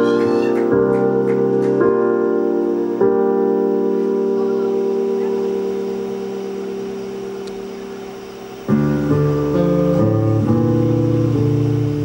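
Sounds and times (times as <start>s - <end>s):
electric keyboard chord ringing: 0.0s - 12.0s.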